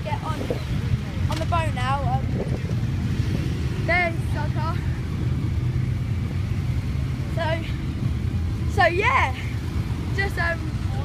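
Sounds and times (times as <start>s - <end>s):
motorcycle engines idling: 0.0s - 11.0s.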